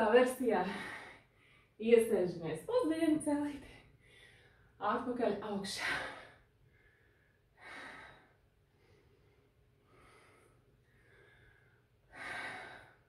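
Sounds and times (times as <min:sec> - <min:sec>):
woman breathing during exercise: 0:00.6 - 0:01.8, 0:03.7 - 0:04.8, 0:05.8 - 0:13.0.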